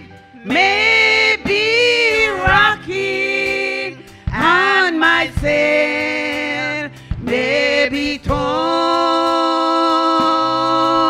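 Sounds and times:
women singing gospel song: 0:00.0 - 0:11.0.

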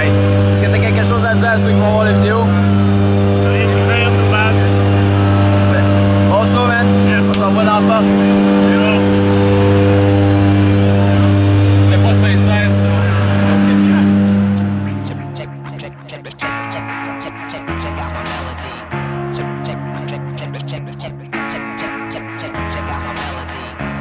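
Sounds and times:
faint voices: 0:00.0 - 0:16.5
propeller aircraft engine droning: 0:00.0 - 0:24.0.

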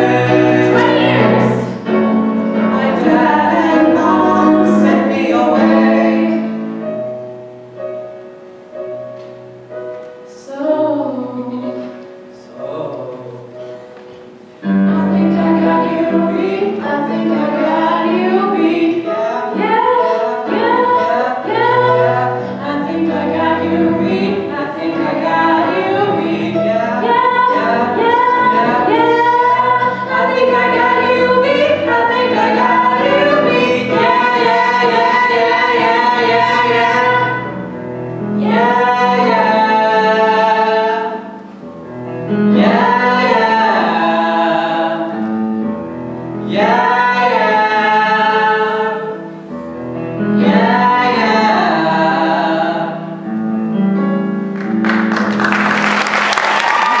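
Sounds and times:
people singing a show-tune duet: 0:00.0 - 0:06.6, 0:14.7 - 0:37.5, 0:38.4 - 0:41.3, 0:42.5 - 0:45.2, 0:46.5 - 0:49.2, 0:50.4 - 0:53.1
audience applauding: 0:54.6 - 0:57.0.

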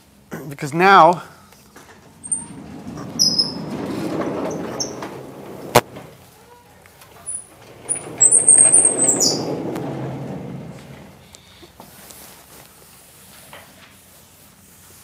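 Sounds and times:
sliding board panel moving: 0:01.8 - 0:06.2, 0:07.1 - 0:11.3
high squeaks: 0:02.0 - 0:06.2, 0:07.2 - 0:11.3.

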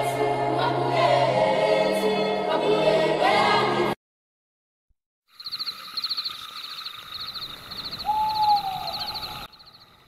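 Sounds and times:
birds chirping trills: 0:05.3 - 0:10.0
whistled bird call falling in pitch: 0:07.8 - 0:09.5.

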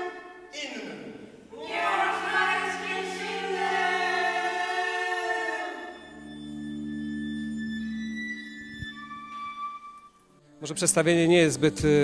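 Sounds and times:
group singing held chord: 0:01.5 - 0:06.1.

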